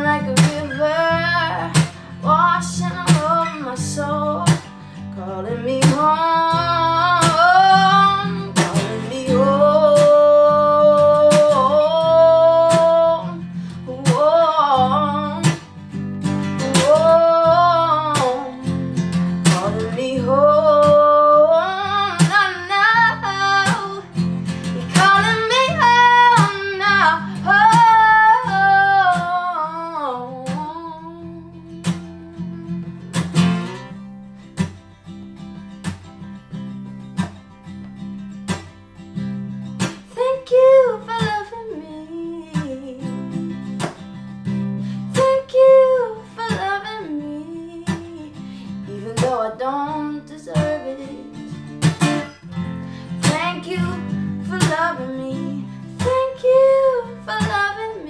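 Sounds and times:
woman singing: 0:00.0 - 0:34.0, 0:39.2 - 0:58.0
strummed acoustic guitar: 0:00.0 - 0:58.0.

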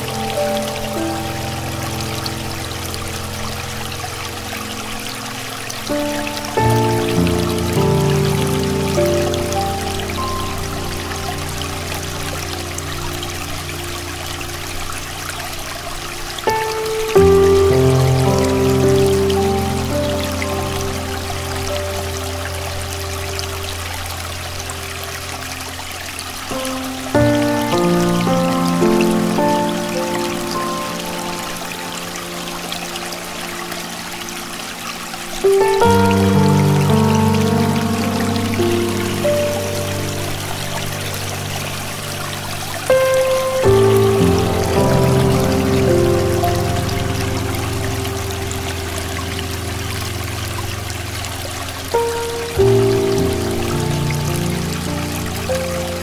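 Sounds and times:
flowing water: 0:00.0 - 0:56.0
slow soft piano music: 0:00.0 - 0:56.0.

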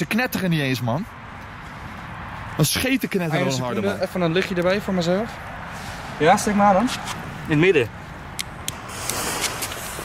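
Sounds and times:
firework crackling: 0:08.7 - 0:10.0
fuse hissing and spitting sparks: 0:08.7 - 0:10.0.

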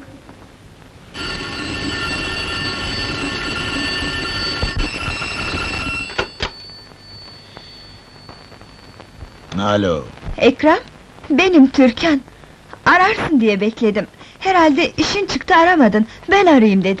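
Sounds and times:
telephone bell ringing: 0:01.1 - 0:09.5.

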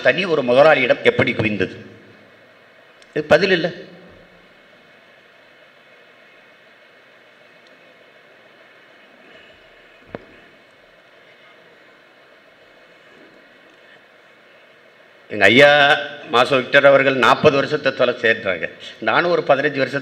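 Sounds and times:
low room noise: 0:00.0 - 0:20.0.

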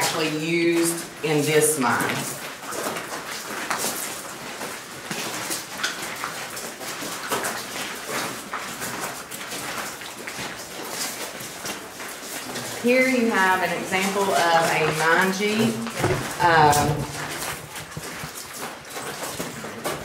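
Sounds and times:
footsteps crunching on gravel: 0:02.1 - 0:20.0.

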